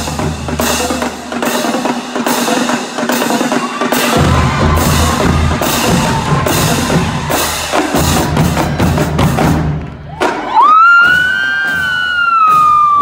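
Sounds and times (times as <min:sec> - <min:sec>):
marching drumline with cymbals: 0:00.0 - 0:13.0.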